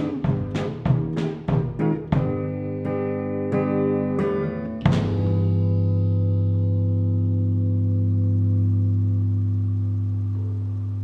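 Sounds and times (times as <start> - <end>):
guitar chord ringing out: 2.1 - 11.0.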